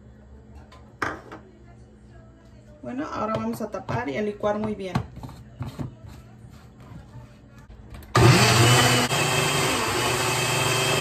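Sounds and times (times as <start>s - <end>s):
blender motor running: 8.2s - 11.0s.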